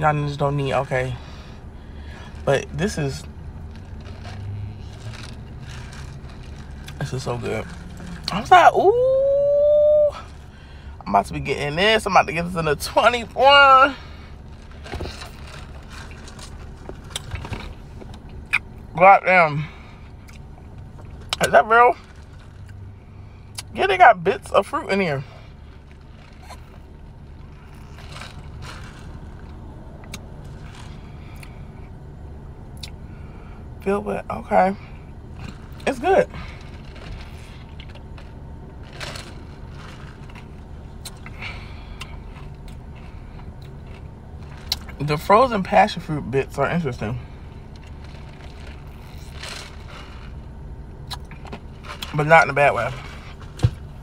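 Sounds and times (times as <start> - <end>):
car air conditioning hum: 0.0 - 54.0
chewing frozen fruit: 3.2 - 8.5, 14.5 - 18.8, 20.1 - 22.8, 25.7 - 31.6, 36.4 - 45.0, 47.6 - 52.2.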